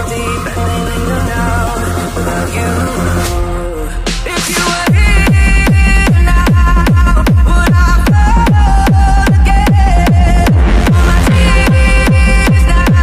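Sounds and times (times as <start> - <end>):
held synth chords: 0.0 - 7.4, 8.6 - 13.0
techno kick drum: 4.1 - 13.0.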